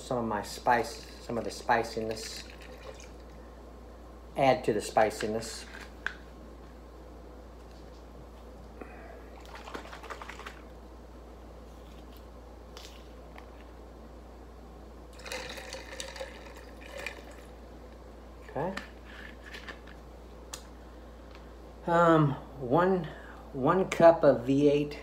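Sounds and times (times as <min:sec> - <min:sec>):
steady low hum: 0:00.0 - 0:25.0
liquid dribbling: 0:00.9 - 0:03.4, 0:09.3 - 0:10.6, 0:15.1 - 0:17.6.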